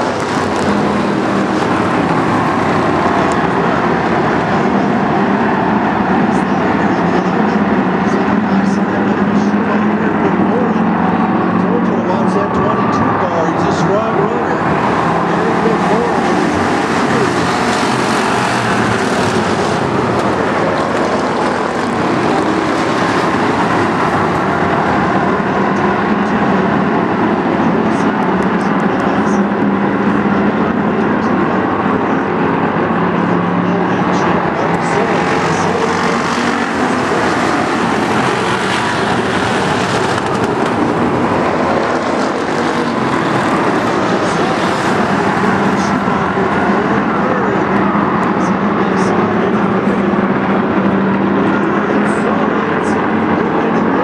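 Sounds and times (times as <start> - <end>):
stock car engines racing: 0.0 - 54.0.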